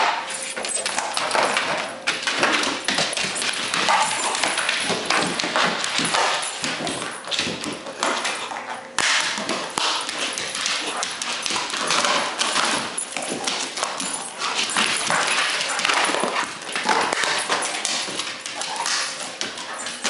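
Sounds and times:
dog chewing plastic frisbee: 2.1 - 19.8.

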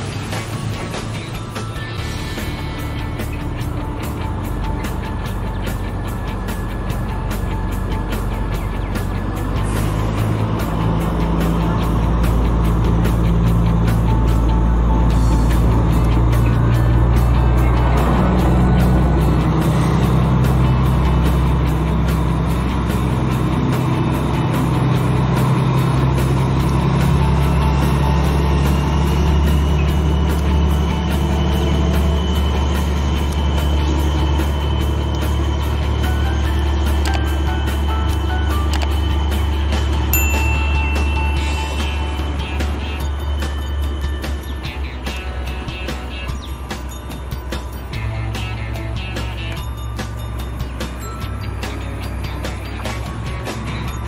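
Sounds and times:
background music with steady beat: 0.0 - 54.0
diesel train running: 0.0 - 54.0.

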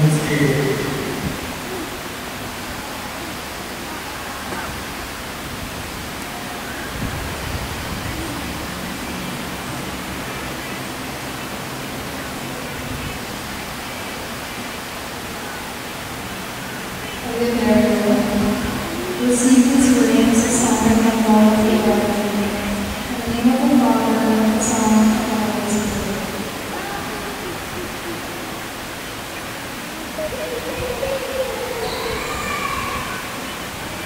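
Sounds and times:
recording hiss: 0.0 - 34.0.

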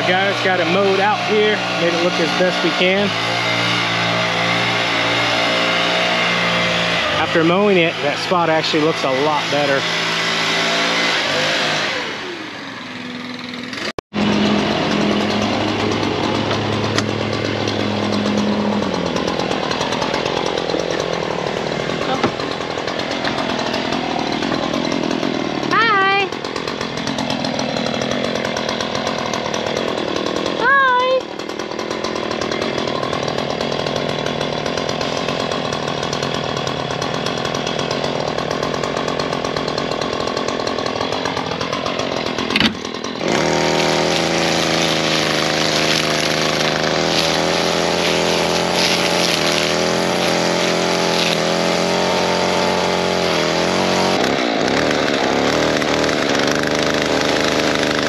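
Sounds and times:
string trimmer running: 0.0 - 58.0.

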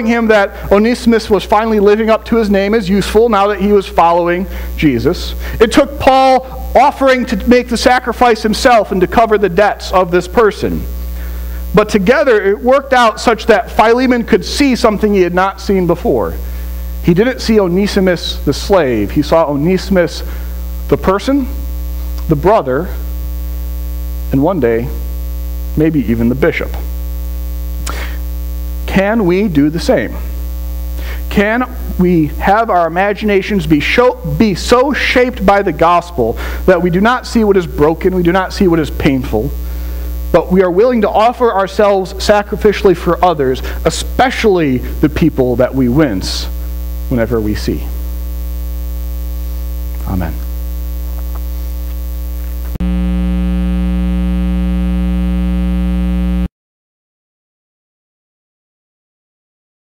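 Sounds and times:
low electrical mains hum: 0.0 - 56.5.

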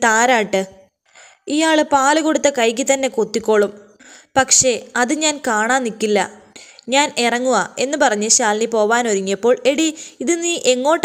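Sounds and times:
woman narrating: 0.0 - 0.8, 1.4 - 11.0.

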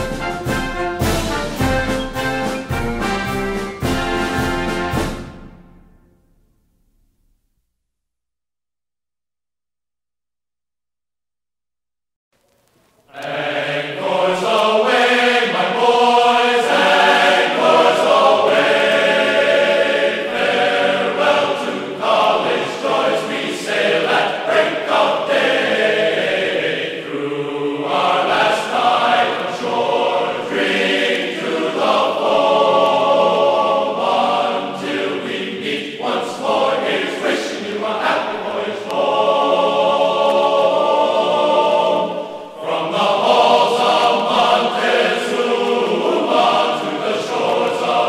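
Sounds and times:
choir singing sustained chords: 13.1 - 48.0.

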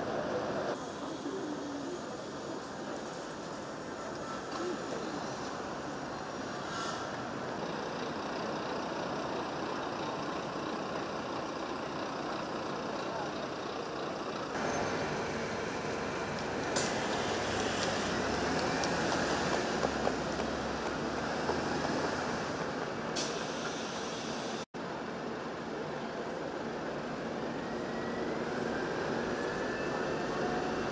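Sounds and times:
traffic noise: 0.0 - 30.9.

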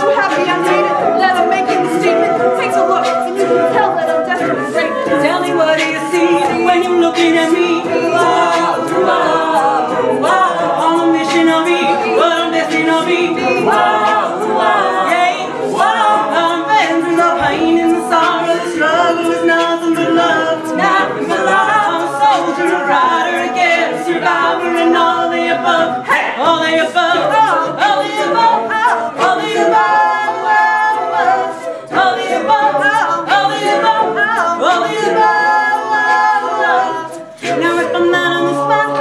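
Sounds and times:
a cappella group singing: 0.0 - 39.0
beatboxed vocal percussion: 0.0 - 39.0
female lead voice singing: 0.0 - 39.0.

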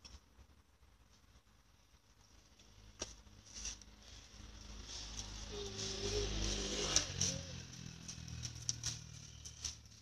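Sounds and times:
vehicle engine passing by: 3.9 - 10.0.

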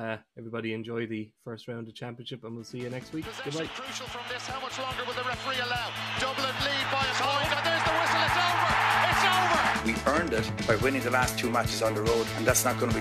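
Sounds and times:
sports commentary: 2.5 - 13.0
theme music with steady beat: 2.8 - 13.0.

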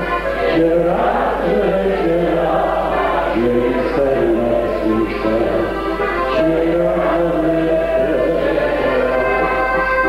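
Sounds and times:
group of people singing: 0.0 - 10.0.

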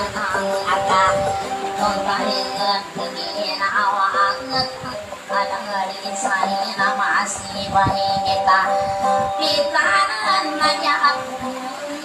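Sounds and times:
instrumental backing: 0.0 - 12.0
person singing wavering melody: 0.0 - 12.0.

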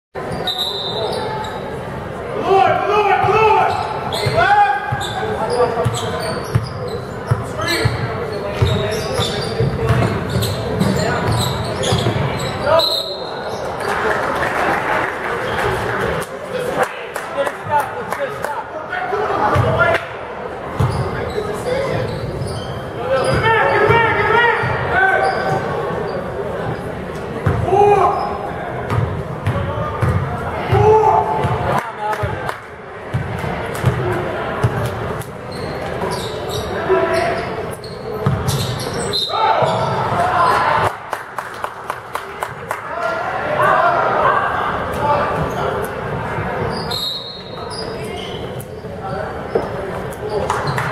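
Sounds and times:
high shoe squeak: 0.2 - 1.8, 3.7 - 13.7, 20.8 - 26.3, 35.5 - 40.0, 46.7 - 50.9
spectators' voices echoing: 0.2 - 50.9
basketball bouncing on court: 5.8 - 8.9, 9.6 - 12.3, 20.7 - 21.0, 27.4 - 27.6, 28.9 - 31.6, 33.1 - 34.9, 38.2 - 38.7.

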